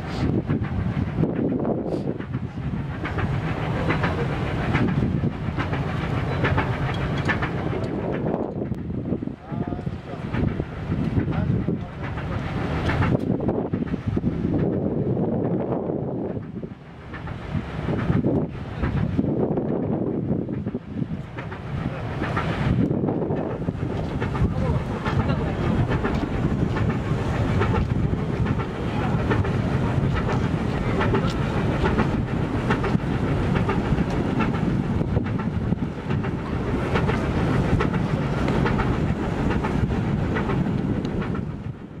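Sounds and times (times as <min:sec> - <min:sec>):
steady low rumble: 0:00.0 - 0:42.0
wind buffeting microphone: 0:00.0 - 0:42.0.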